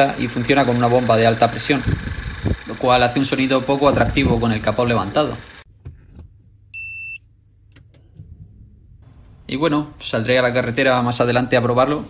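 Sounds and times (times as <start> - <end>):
car engine idling: 0.0 - 5.7
short electronic beep: 6.8 - 7.2.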